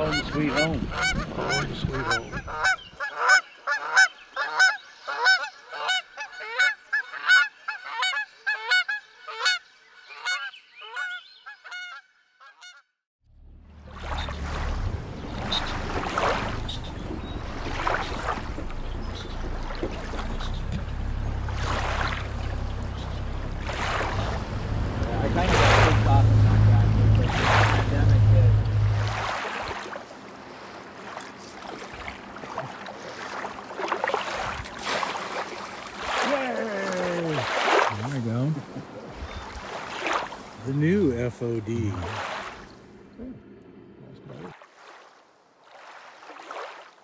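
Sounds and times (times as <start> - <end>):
boat motor humming: 0.0 - 7.2, 13.2 - 44.6
geese honking: 0.0 - 12.8, 13.9 - 30.8
wind rushing over microphone: 0.6 - 2.9.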